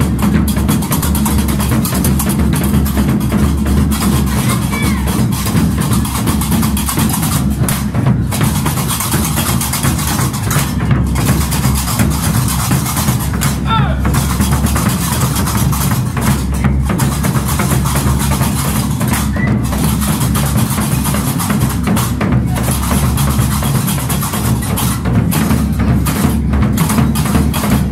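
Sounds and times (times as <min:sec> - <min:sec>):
double-headed drums played loudly: 0:00.0 - 0:27.9.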